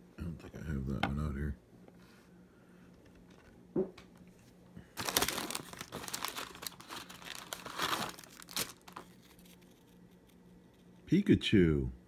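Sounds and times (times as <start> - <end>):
plastic wrapper crinkling: 4.9 - 10.4.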